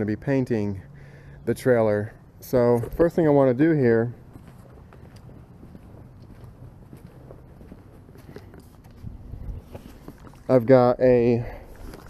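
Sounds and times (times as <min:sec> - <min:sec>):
footsteps on concrete: 0:02.7 - 0:10.4
scuffs and clicks: 0:04.4 - 0:10.5.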